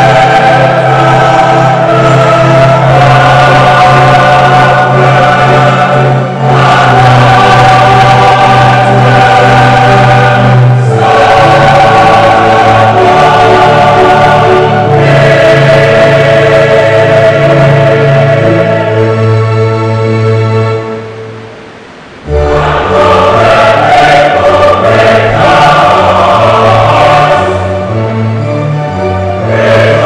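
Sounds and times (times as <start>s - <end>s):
church choir singing a hymn: 0.0s - 21.1s, 22.3s - 30.0s.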